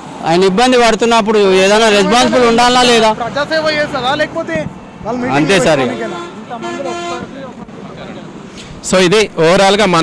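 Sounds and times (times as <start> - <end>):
road traffic: 0.0 - 10.0
vehicle horn honking: 5.4 - 7.5.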